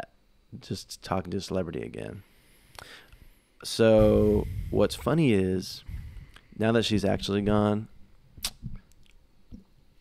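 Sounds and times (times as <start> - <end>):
short hissing whoosh: 2.2 - 6.6.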